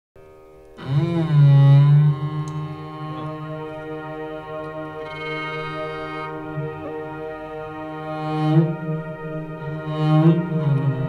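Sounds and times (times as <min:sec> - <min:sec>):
bowed cello: 0:00.5 - 0:11.0
keyboard pad tones: 0:04.6 - 0:06.9.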